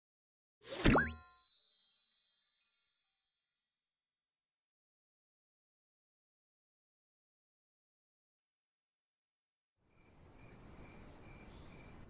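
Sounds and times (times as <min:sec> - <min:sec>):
bright ding with sparkling shimmer: 0:00.9 - 0:03.9.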